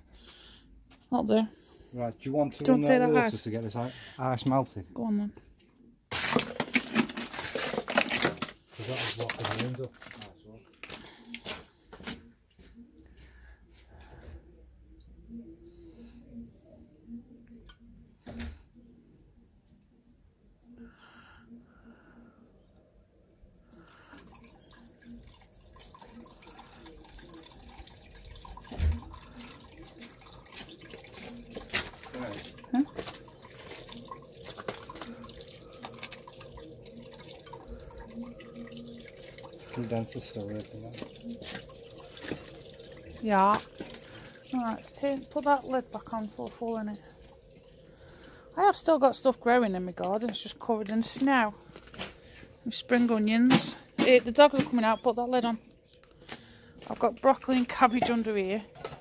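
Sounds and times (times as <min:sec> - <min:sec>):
water trickling: 0:01.6 - 0:04.8, 0:06.1 - 0:15.6, 0:23.5 - 0:59.0
water rushing down a downpipe: 0:06.1 - 0:12.2, 0:23.6 - 0:55.4, 0:56.8 - 0:59.0
water dripping: 0:06.1 - 0:15.8, 0:23.4 - 0:59.0.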